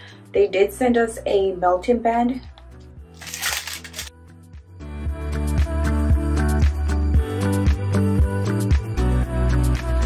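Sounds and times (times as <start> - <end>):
background music: 0.0 - 10.0
plastic packaging crinkling: 3.1 - 4.1.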